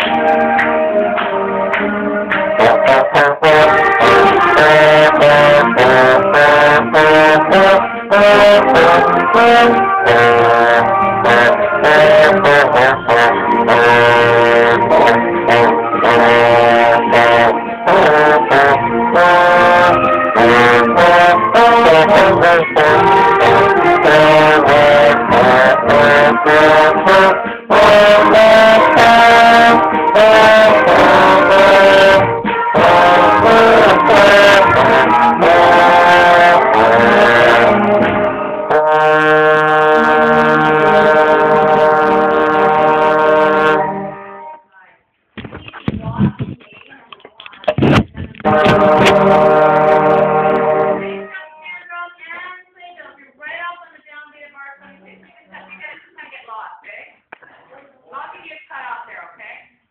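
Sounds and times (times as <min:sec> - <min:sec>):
concert band music: 0:00.0 - 0:44.6, 0:45.6 - 0:52.1
trombone playing: 0:00.0 - 0:44.6, 0:47.7 - 0:51.8.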